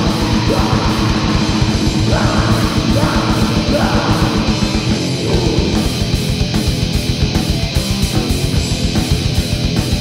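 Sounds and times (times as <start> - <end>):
distorted electric guitars: 0.0 - 10.0
rapid bass drum strokes: 0.0 - 10.0.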